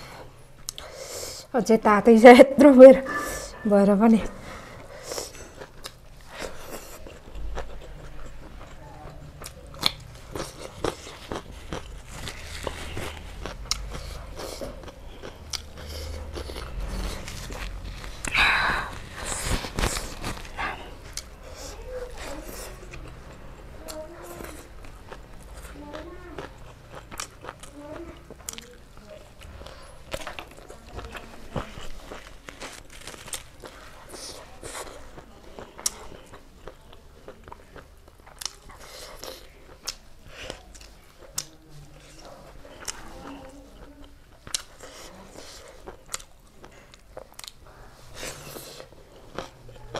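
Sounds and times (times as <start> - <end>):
wet chewing: 4.6 - 49.9
crunching raw cucumber: 9.4 - 18.4, 30.1 - 41.6.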